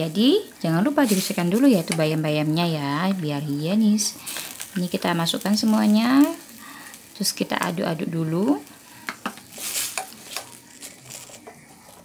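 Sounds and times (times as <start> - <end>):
spatula stirring in a wok: 0.0 - 12.0
water boiling: 0.0 - 12.0
spatula tapping wok: 1.1 - 3.2, 9.0 - 10.6.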